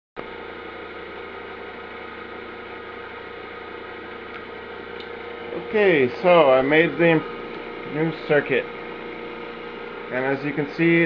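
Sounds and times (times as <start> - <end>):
electric motor humming: 0.2 - 11.0.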